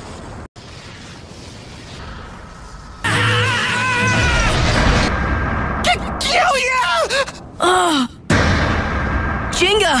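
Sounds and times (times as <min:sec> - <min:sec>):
rushing rumbling energy effect: 0:00.0 - 0:06.2, 0:08.3 - 0:10.0.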